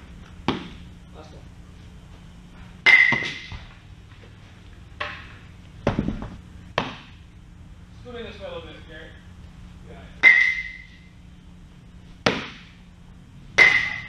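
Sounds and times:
baseballs hitting mitts: 0.4 - 0.9, 2.8 - 3.7, 5.0 - 7.2, 10.2 - 10.9, 12.2 - 12.8, 13.5 - 14.0.

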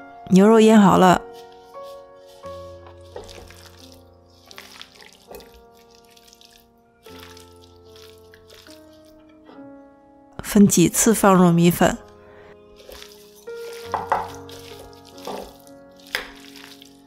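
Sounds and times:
soft background music: 0.0 - 17.0
wet squelching of stirred meat: 1.2 - 9.3, 12.7 - 17.0.

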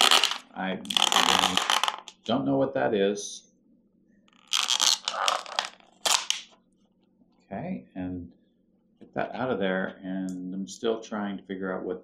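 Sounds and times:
plastic packaging crinkling: 0.0 - 2.3, 4.4 - 6.5.

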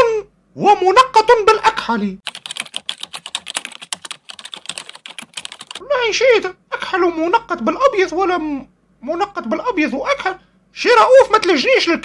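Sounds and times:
rapid typing on keyboard: 2.2 - 5.8.

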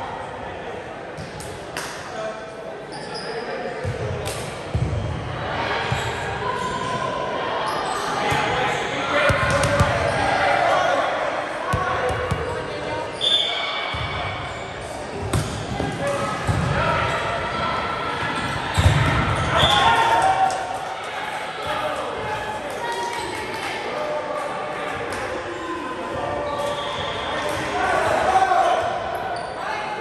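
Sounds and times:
players calling and shouting: 2.1 - 30.0.

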